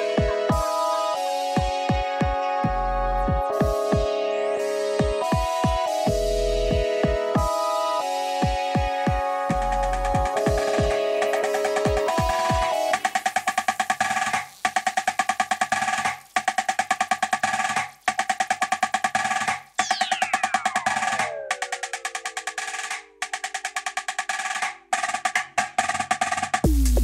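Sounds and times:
dance music: 0.0 - 17.9
heavy bass: 2.6 - 3.5, 6.1 - 7.5, 9.5 - 10.3, 26.6 - 27.0
fast snare drum roll: 10.2 - 27.0.

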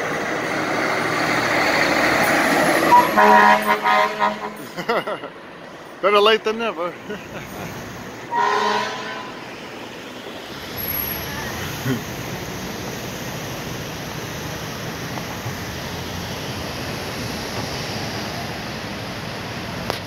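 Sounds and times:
fire engine engine: 0.0 - 20.0
street traffic: 0.0 - 20.0
air horn blast: 2.9 - 4.8, 8.3 - 9.4.

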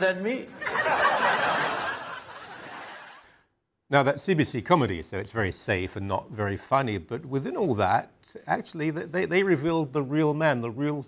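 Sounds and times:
audience laughter: 0.6 - 3.4.

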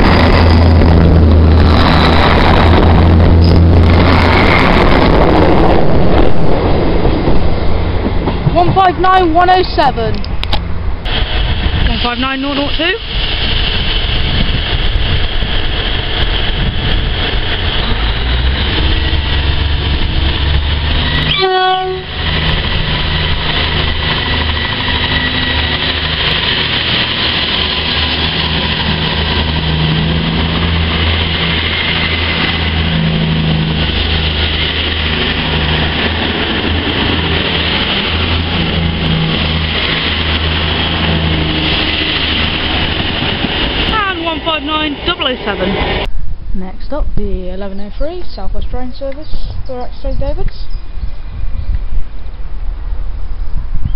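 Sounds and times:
carriages rolling rumble: 0.0 - 53.9
train diesel engine drone: 0.0 - 53.9.

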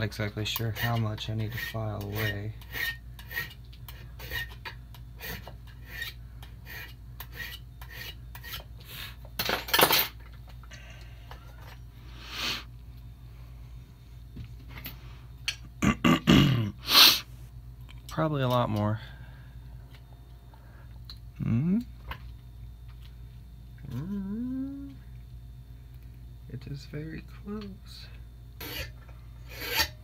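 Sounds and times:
file rasping on metal key: 0.4 - 8.7, 28.6 - 30.0.

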